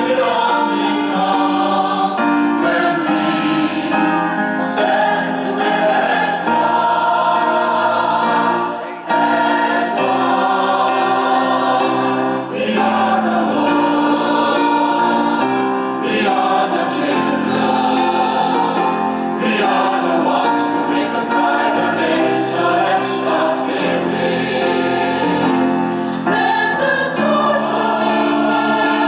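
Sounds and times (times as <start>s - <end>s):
choir singing in chords: 0.0s - 29.0s.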